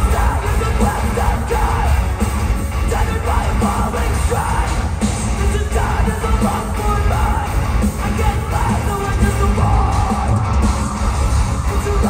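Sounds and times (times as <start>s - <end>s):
live metal band: 0.0s - 12.0s.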